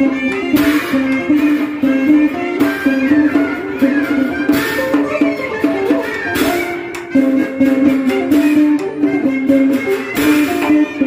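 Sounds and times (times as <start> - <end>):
bowed two-string fiddle: 0.0 - 11.0
plucked guitar: 0.0 - 11.0.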